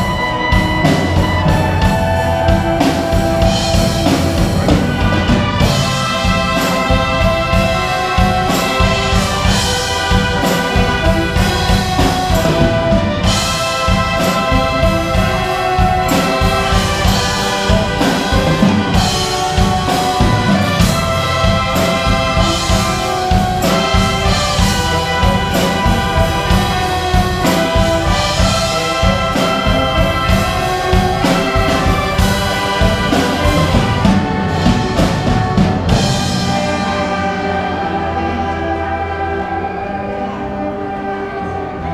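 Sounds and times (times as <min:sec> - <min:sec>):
wind band playing: 0:00.0 - 0:41.9.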